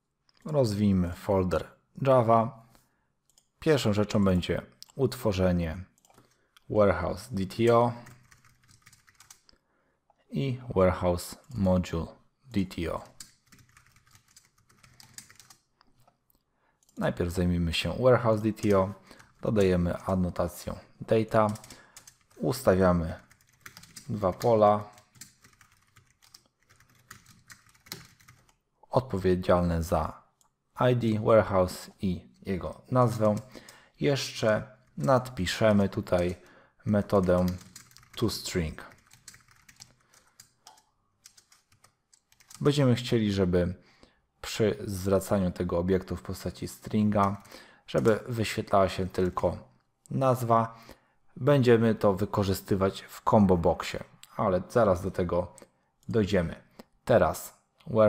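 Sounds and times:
faint keyboard typing: 3.2 - 5.1, 5.8 - 9.6, 12.6 - 16.2, 18.4 - 28.6, 32.3 - 33.8, 34.4 - 42.8, 46.2 - 49.8.

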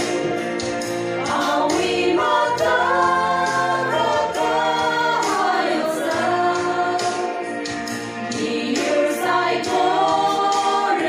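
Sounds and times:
women's group singing gospel: 0.0 - 11.0.

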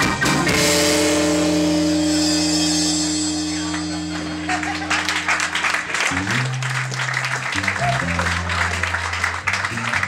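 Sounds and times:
organ and electric guitar chord: 0.0 - 6.6.

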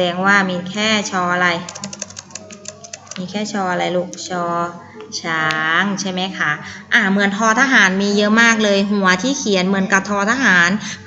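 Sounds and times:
woman's voice: 0.0 - 2.1, 3.0 - 11.0
rapid keyboard key clicks: 1.6 - 3.3.

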